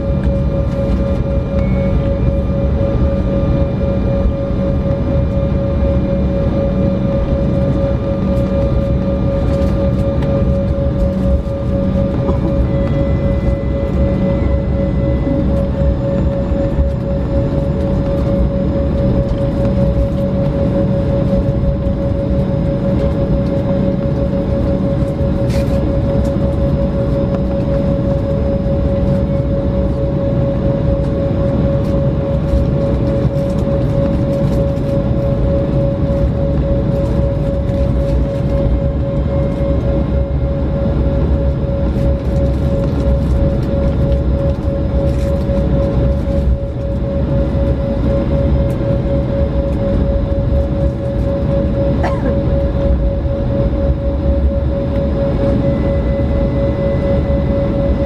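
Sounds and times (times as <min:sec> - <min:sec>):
jet engine whine: 0:00.0 - 0:58.0
jet engines rumbling: 0:00.0 - 0:58.0.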